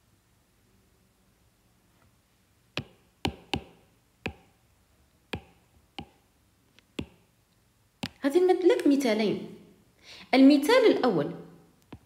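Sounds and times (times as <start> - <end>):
stylus tapping on glass screen: 2.8 - 4.6, 5.3 - 6.2, 7.0 - 7.3.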